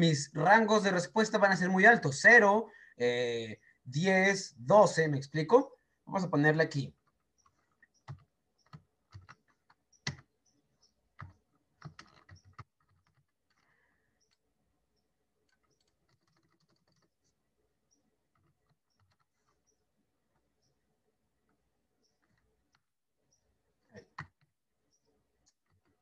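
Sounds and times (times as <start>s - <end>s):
computer keyboard typing: 6.9s - 14.4s, 15.4s - 17.3s, 18.2s - 19.7s, 24.0s - 24.5s.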